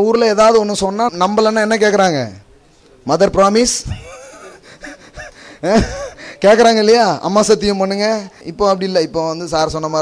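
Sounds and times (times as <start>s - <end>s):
man speaking into a microphone: 0.0s - 10.0s
faint breathy voice sounds: 3.9s - 6.6s.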